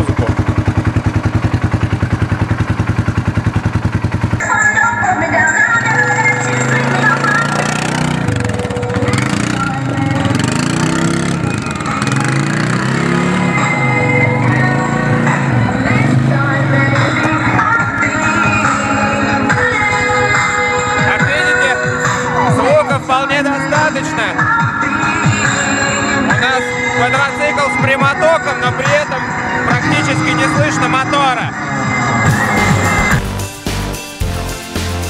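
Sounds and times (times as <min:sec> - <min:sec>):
quad bike engine idling: 0:00.0 - 0:31.4
pop music with singing: 0:04.4 - 0:35.0.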